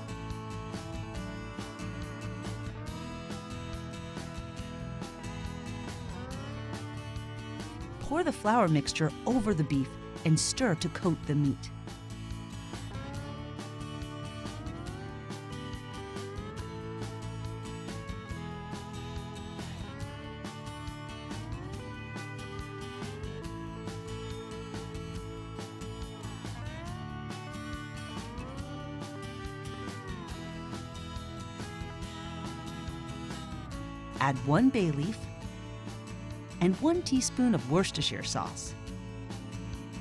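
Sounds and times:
sliding guitar music: 0.0s - 40.0s.

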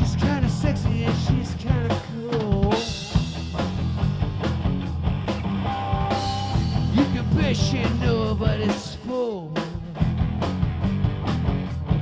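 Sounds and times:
drum kit: 0.0s - 12.0s
electric bass: 0.0s - 12.0s
electric guitar: 0.0s - 12.0s.

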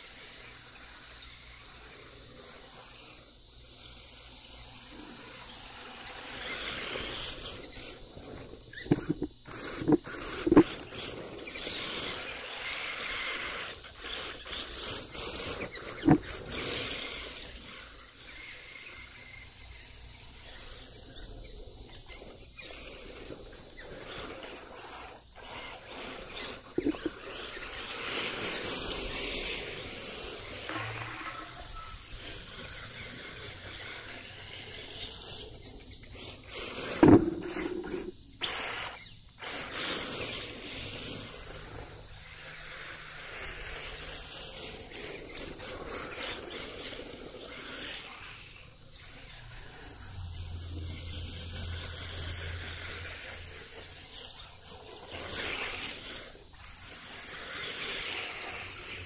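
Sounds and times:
small electric drivetrain: 0.0s - 59.0s
toy car tyres scraping on asphalt: 0.0s - 59.0s.

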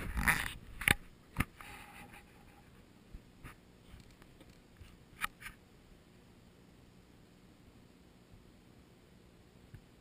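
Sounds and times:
faint clicks and taps: 3.1s - 5.6s.

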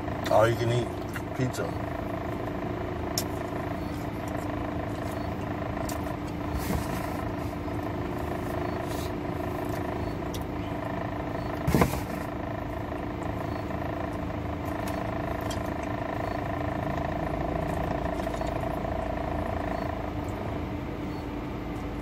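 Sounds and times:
car idling cabin hum: 0.0s - 22.0s
chewing clicks: 9.7s - 10.5s, 14.7s - 16.4s.

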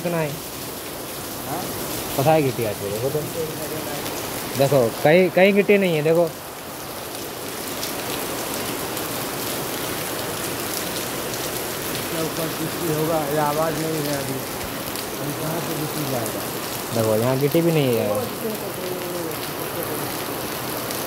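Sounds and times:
steady rain falling: 0.0s - 21.0s.

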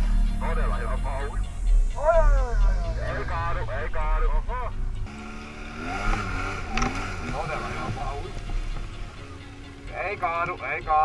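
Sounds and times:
voices: 0.0s - 11.0s
quad bike engine revving: 2.0s - 10.2s.

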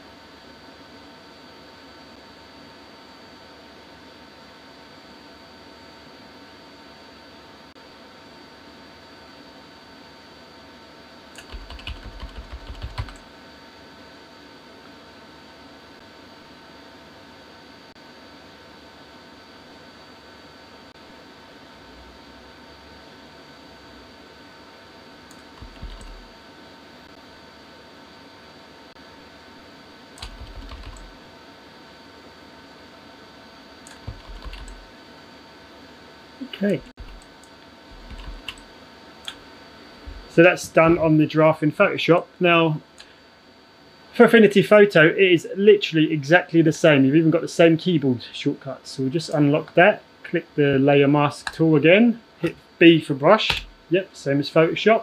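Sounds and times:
faint room hum: 0.0s - 55.0s
computer keyboard typing: 11.4s - 13.2s, 25.3s - 26.3s, 30.2s - 31.2s, 33.9s - 34.9s, 36.7s - 38.7s.

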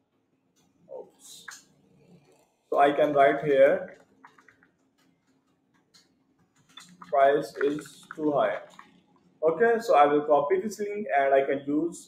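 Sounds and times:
computer keyboard keystrokes: 3.9s - 9.0s.

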